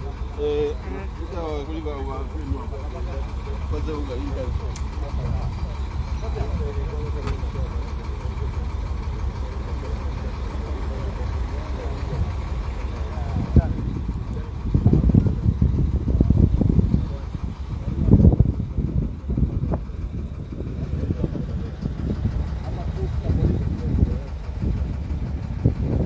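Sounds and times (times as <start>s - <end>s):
truck engine rumbling: 0.0s - 26.0s.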